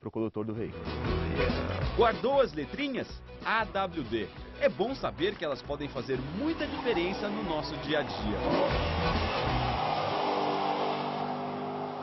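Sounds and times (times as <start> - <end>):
car engine running: 5.8 - 12.0.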